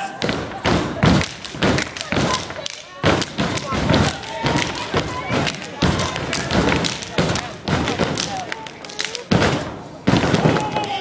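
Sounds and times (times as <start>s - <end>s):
crowd voices: 0.0s - 11.0s
stomping and clapping on a stage: 0.0s - 11.0s.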